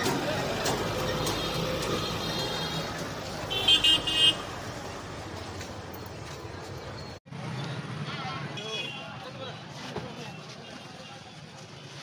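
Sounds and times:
street background noise: 0.0s - 12.0s
vehicle horn beeps: 1.2s - 4.5s.

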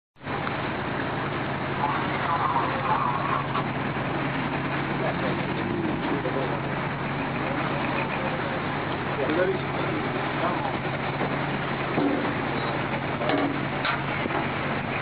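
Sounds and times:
ship engine hum: 0.2s - 15.0s
wind and sea rushing: 0.2s - 15.0s
distant voices calling: 0.5s - 15.0s.

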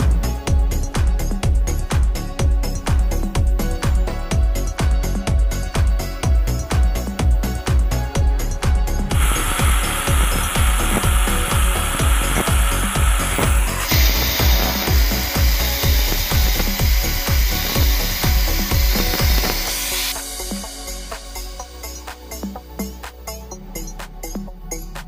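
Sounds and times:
background music beat: 0.0s - 25.0s
angle grinder cutting bamboo: 9.1s - 20.2s.

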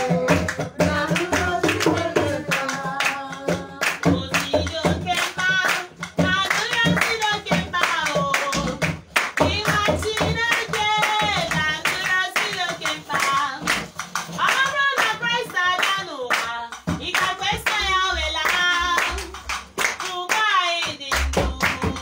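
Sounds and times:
group singing: 0.0s - 13.5s, 15.9s - 22.0s
rhythmic hand clapping: 0.0s - 22.0s.

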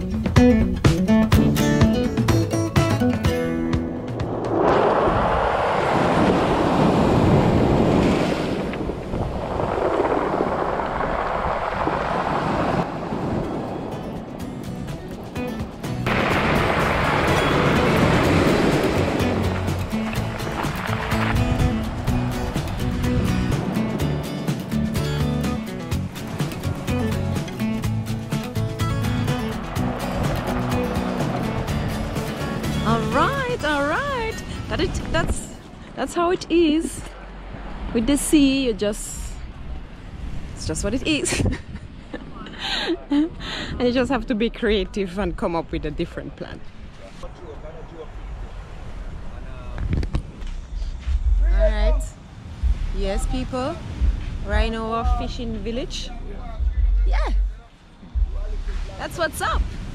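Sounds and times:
background music: 0.0s - 4.7s, 13.5s - 36.1s
waves on a pebble beach: 4.3s - 27.8s, 28.8s - 39.1s, 58.6s - 59.9s.

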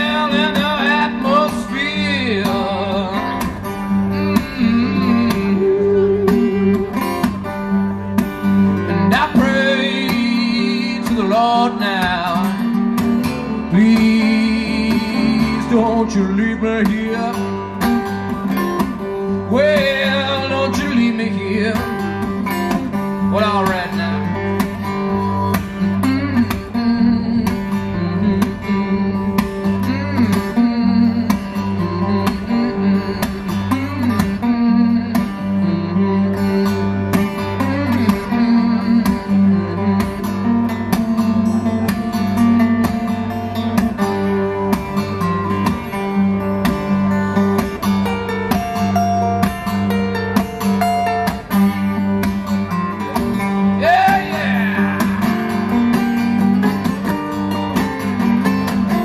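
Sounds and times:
acoustic guitar played hard: 0.0s - 59.0s
person singing or humming: 4.2s - 7.0s, 53.8s - 55.8s.

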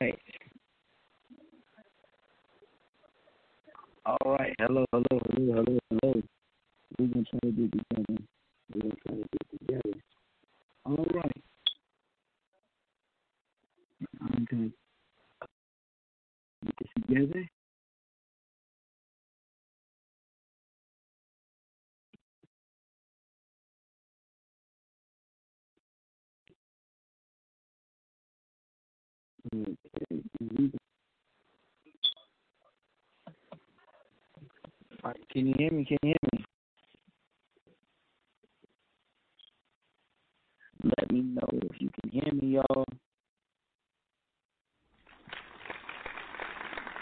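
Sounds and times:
person speaking: 0.0s - 6.3s, 6.9s - 10.1s
faint broken voices on a line: 6.9s - 10.0s.

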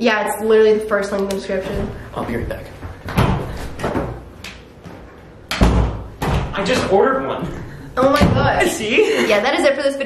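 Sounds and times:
door banging: 5.5s - 7.0s, 8.0s - 8.6s.

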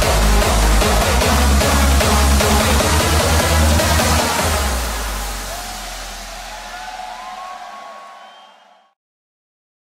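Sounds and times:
bass tone: 0.0s - 6.7s
hardstyle dance music: 0.0s - 8.1s
festival crowd noise: 0.0s - 8.9s
rising whistle-like tones: 5.2s - 9.0s.

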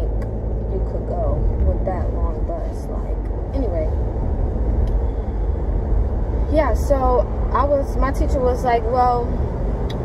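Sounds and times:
car rumble from inside cabin: 0.0s - 10.0s.

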